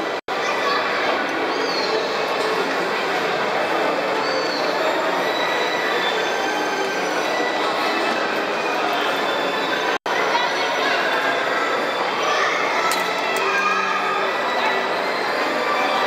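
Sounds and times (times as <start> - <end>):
carousel turning: 0.0 - 16.0.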